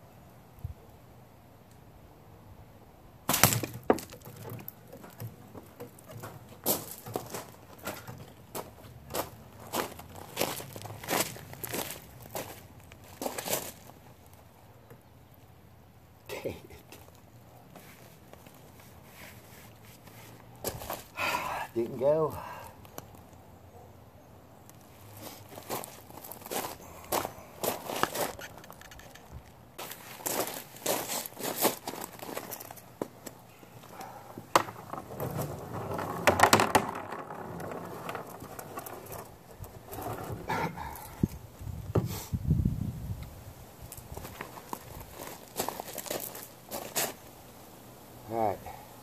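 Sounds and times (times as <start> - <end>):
gravel crunching: 3.3 - 14.5, 16.7 - 23.4, 24.7 - 41.7, 43.8 - 47.4
clicks and knocks on plastic barrel: 34.4 - 39.3.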